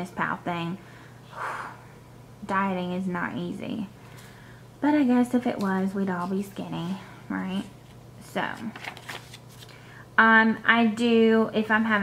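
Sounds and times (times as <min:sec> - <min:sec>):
paper page turning: 0:07.8 - 0:09.8.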